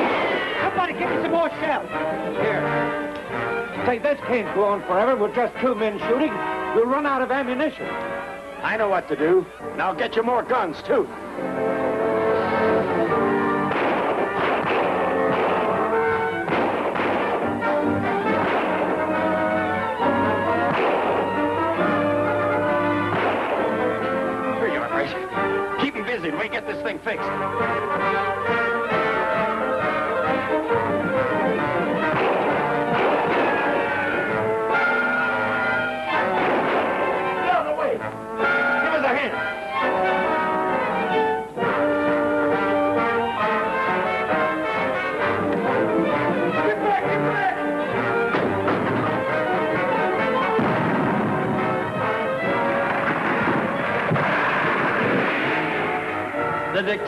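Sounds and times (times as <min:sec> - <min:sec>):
dramatic orchestral music with brass: 0:00.0 - 0:57.0.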